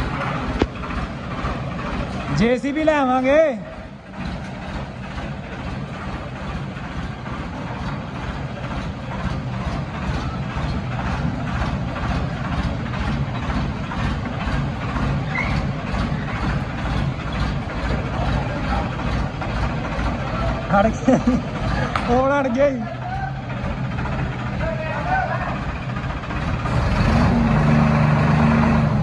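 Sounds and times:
tractor diesel engine under load: 0.0 - 29.0.

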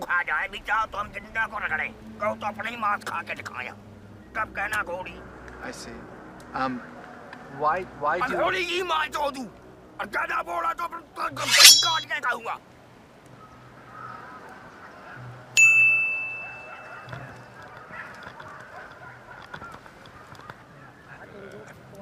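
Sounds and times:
sharp ding: 11.4 - 12.1
short shrill cry: 11.4 - 12.1
low background murmur: 12.6 - 22.0.

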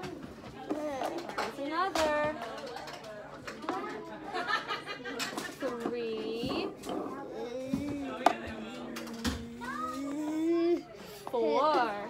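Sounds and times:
child vocalizing: 7.1 - 8.2, 9.2 - 10.9.

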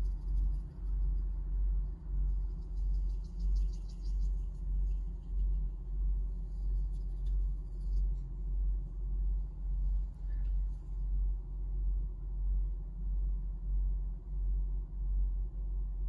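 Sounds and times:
brush dabbing charcoal on paper: 0.0 - 10.8
low rumble: 0.0 - 16.0.

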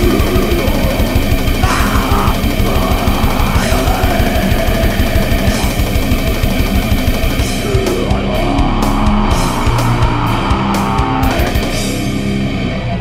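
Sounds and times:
fast dense drumming: 0.0 - 12.3
distorted electric guitar: 0.0 - 13.0.

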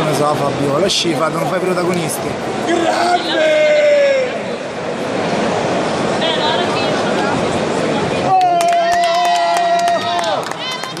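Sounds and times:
person cheering shout: 8.3 - 10.8
hand claps: 8.3 - 11.0.

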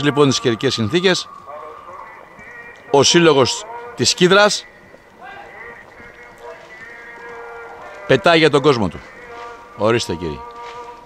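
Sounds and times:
light rain falling: 0.0 - 11.0.

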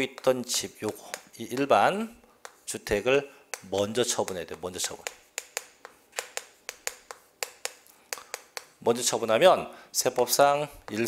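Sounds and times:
chalk tapping on chalkboard: 0.0 - 9.1, 10.0 - 11.0.

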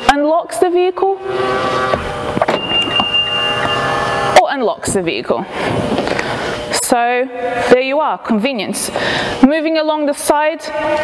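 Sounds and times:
steady electric hum: 0.0 - 11.0
thin high steady tone: 2.5 - 4.6.

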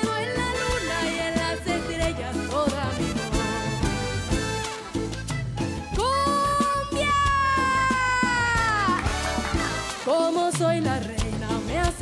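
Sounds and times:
band accompaniment: 0.0 - 12.0.

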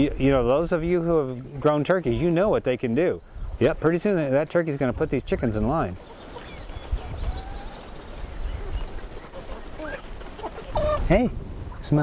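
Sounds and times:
birds peeping and chirping: 0.0 - 12.0
wind rumble on microphone: 3.2 - 3.8, 4.9 - 9.2, 10.7 - 12.0.

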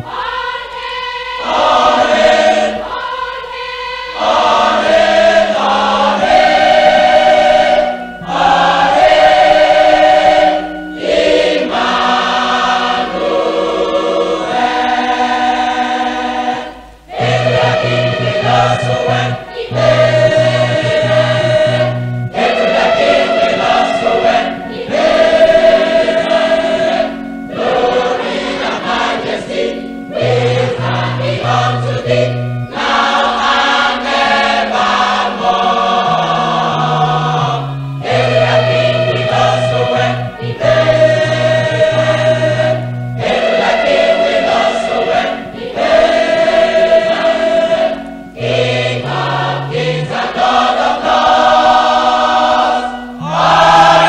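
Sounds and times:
choir singing gospel: 0.0 - 54.0.

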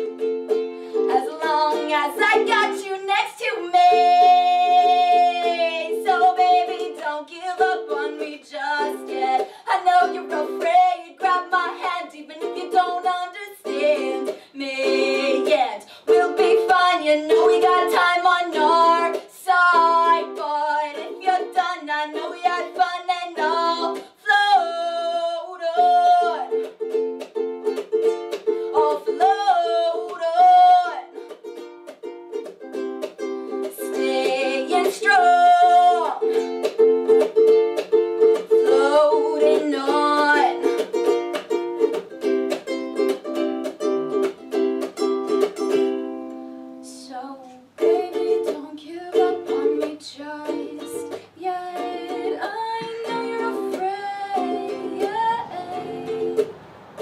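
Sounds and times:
ukulele chords: 0.0 - 57.0
woman singing: 0.9 - 26.7, 28.6 - 31.3, 33.5 - 37.2, 38.4 - 42.0, 46.7 - 56.6.

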